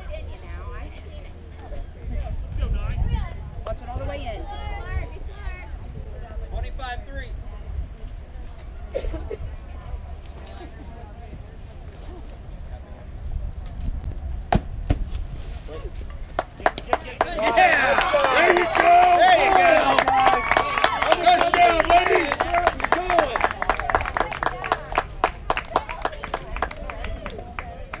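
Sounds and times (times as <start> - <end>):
scattered clapping: 16.3 - 28.0.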